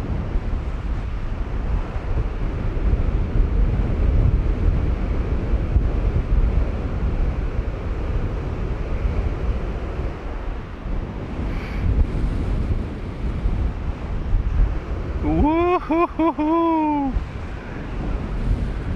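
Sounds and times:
breaking surf: 0:00.0 - 0:18.9
wind buffeting microphone: 0:00.0 - 0:18.9.

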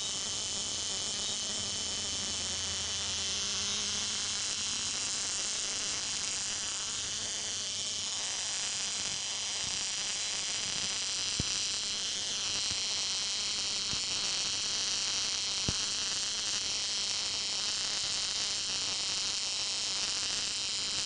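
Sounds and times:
tesla coil high-pitched buzz: 0:00.0 - 0:21.0.

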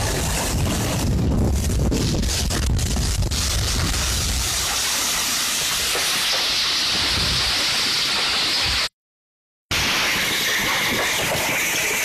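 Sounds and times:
wind rumble on microphone: 0:00.0 - 0:04.6
heavy rain on pavement: 0:00.0 - 0:08.9.

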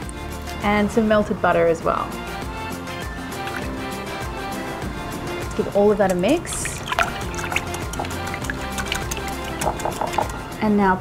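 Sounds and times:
background music: 0:00.0 - 0:11.0
whisk beating batter in glass bowl: 0:06.0 - 0:10.4.

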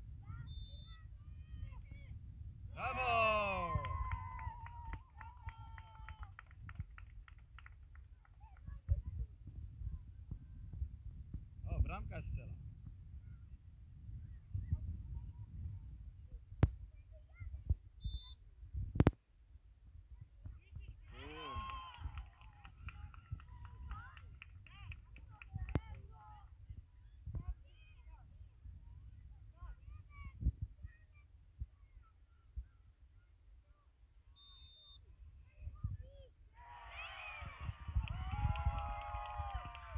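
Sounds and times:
wind rumble on microphone: 0:00.0 - 0:19.2, 0:19.8 - 0:31.8, 0:35.5 - 0:36.3, 0:37.1 - 0:39.9
wind buffeting microphone: 0:08.4 - 0:18.0, 0:37.4 - 0:39.9.

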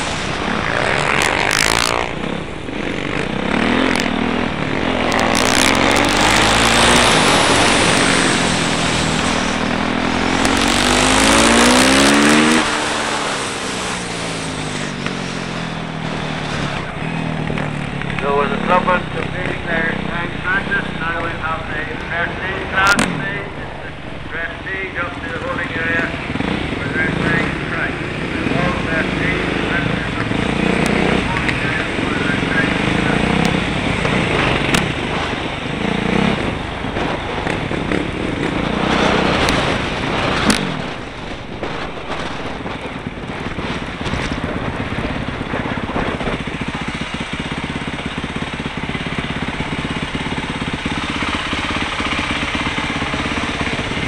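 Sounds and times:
wind rushing: 0:00.0 - 0:26.8, 0:33.2 - 0:46.7
motorcycle engine revving: 0:00.0 - 0:54.0.

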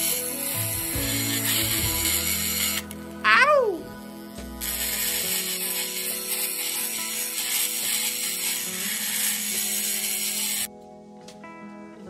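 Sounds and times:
rotary tool grinding metal: 0:00.0 - 0:03.0, 0:04.0 - 0:10.7.

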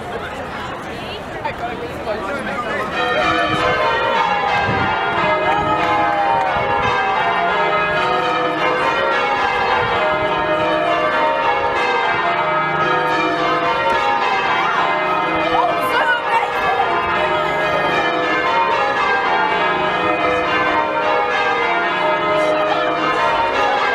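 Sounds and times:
church bells ringing: 0:02.1 - 0:23.9.

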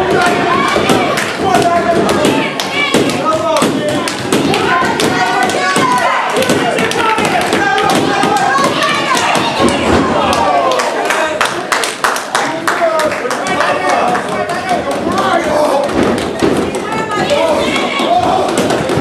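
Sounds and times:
people shouting: 0:00.0 - 0:11.4, 0:13.5 - 0:19.0.

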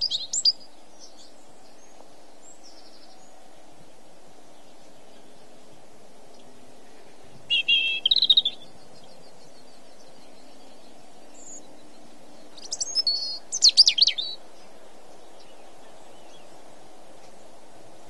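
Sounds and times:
songbird chirping: 0:00.0 - 0:18.0
steady low background noise: 0:00.0 - 0:18.0.

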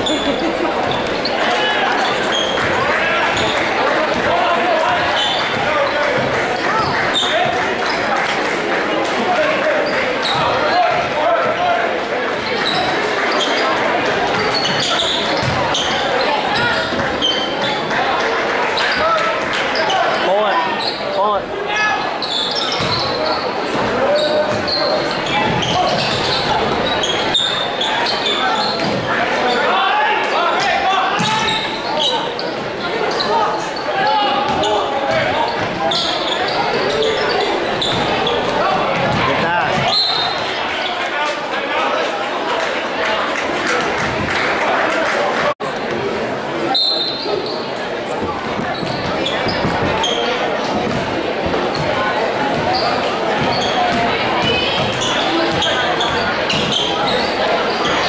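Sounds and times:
spectators talking: 0:00.0 - 0:58.0.

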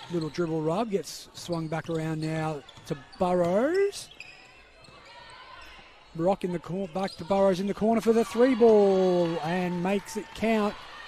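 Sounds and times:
sneakers squeaking on hardwood: 0:01.4 - 0:05.8.

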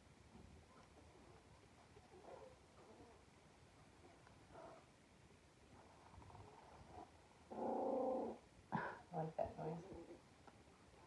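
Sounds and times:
puppy growling: 0:07.5 - 0:08.4.

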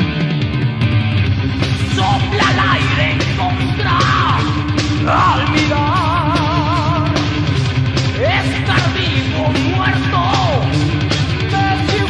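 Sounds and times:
heavy metal band playing: 0:00.0 - 0:12.0
high sliding guitar line: 0:00.0 - 0:12.0.

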